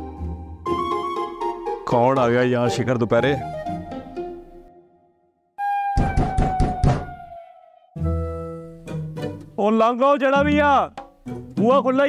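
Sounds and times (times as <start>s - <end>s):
knocking on a door: 6.0s - 7.2s.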